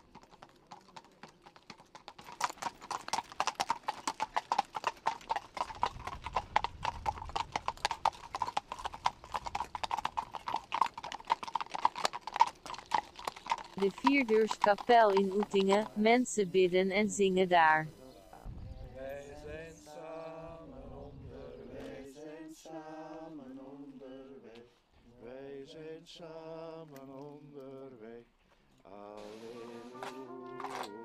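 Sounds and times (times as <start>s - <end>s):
hooves clip-clopping on pavement: 0.0s - 17.9s, 29.6s - 31.0s.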